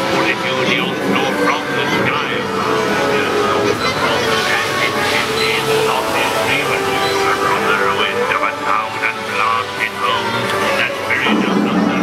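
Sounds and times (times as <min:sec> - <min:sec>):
many voices chattering: 0:00.0 - 0:12.0.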